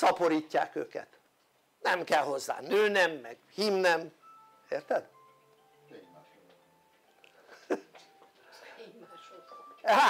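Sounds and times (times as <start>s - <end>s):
phone chiming melody: 4.2s - 9.9s.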